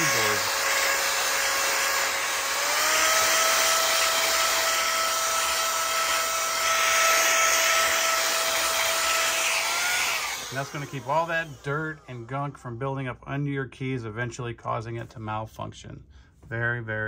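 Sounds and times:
motor whine: 0.0s - 12.5s.

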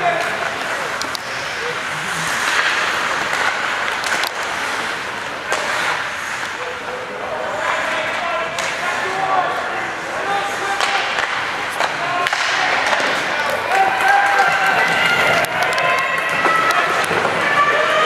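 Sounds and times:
crowd hubbub: 0.0s - 18.0s
people shouting: 12.0s - 18.0s.

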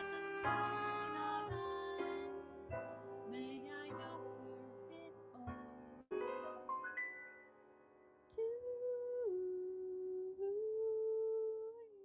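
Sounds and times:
woman singing wordless line: 0.0s - 6.2s, 8.3s - 12.0s.

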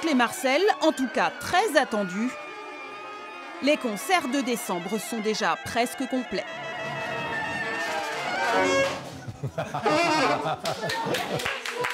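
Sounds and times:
wind band holding notes: 6.0s - 9.1s, 9.8s - 10.5s.

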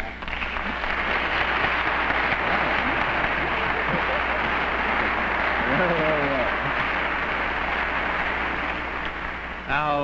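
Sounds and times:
studio audience applauding: 0.0s - 10.0s.

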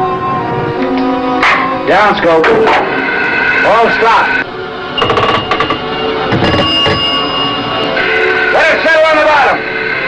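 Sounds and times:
dramatic background score: 0.0s - 10.0s.

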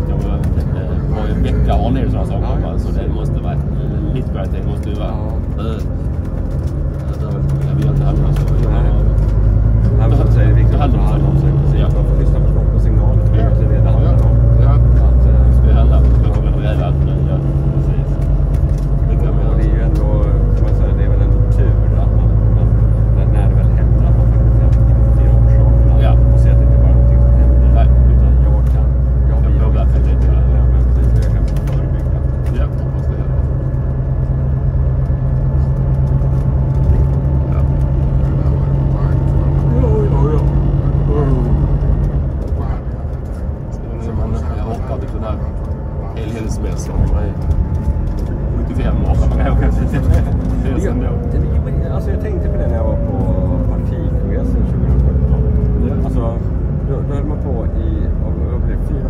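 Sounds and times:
bus engine drone: 0.0s - 59.0s.

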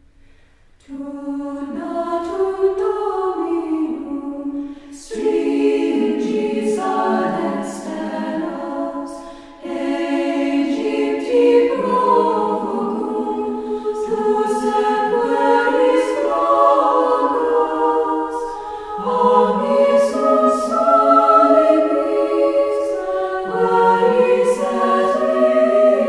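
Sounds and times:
choir singing in harmony: 0.8s - 26.0s.

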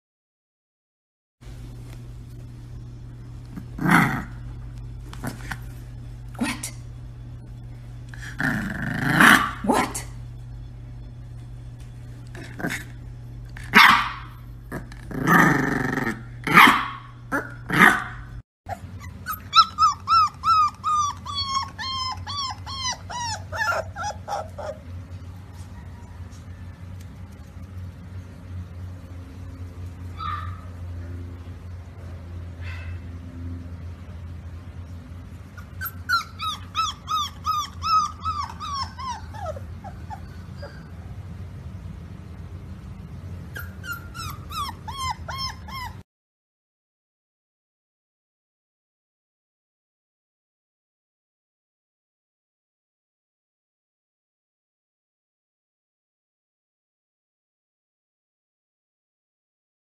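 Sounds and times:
puppy barking growly: 3.5s - 6.8s, 8.2s - 10.1s, 12.3s - 13.0s, 13.6s - 25.0s, 30.0s - 30.8s, 35.5s - 41.2s, 43.5s - 46.0s
puppy high-pitched yips: 18.7s - 24.8s, 30.1s - 30.7s, 35.6s - 41.0s, 43.5s - 46.0s.

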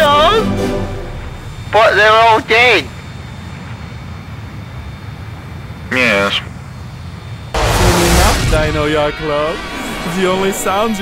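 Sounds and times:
jet engines droning: 0.0s - 11.0s
jet fly-past: 7.4s - 11.0s.

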